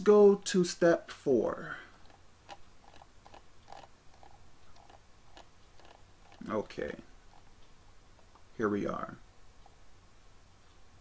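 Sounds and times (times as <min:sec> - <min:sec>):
computer mouse clicks: 0:02.0 - 0:06.6.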